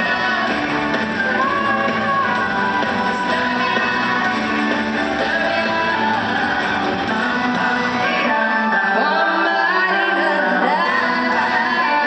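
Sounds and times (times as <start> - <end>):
amplified pop concert music: 0.0 - 12.0
woman singing: 0.0 - 12.0.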